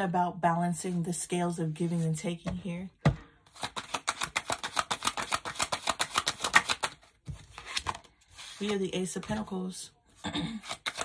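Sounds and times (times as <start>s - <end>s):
cards being shuffled: 3.5s - 9.6s, 10.6s - 11.0s.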